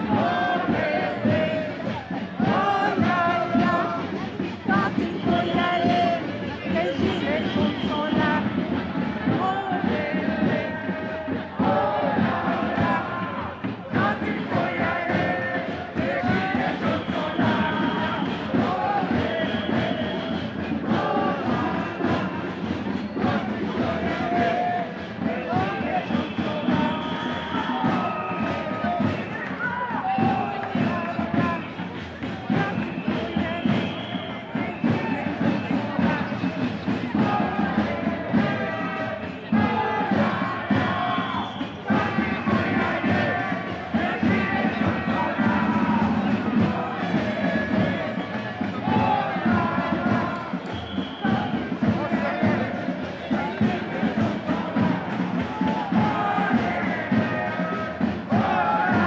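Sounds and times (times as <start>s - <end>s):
many voices: 0.0s - 59.0s
marching crowd noise: 0.0s - 59.0s.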